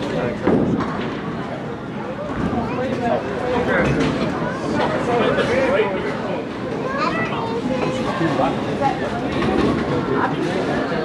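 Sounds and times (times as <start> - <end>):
chatter of people: 0.0 - 11.0.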